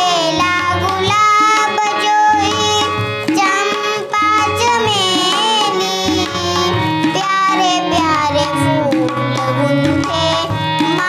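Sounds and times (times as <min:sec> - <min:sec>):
girl singing: 0:00.0 - 0:11.0
harmonium chords: 0:00.0 - 0:11.0
tabla playing rhythm: 0:00.0 - 0:11.0.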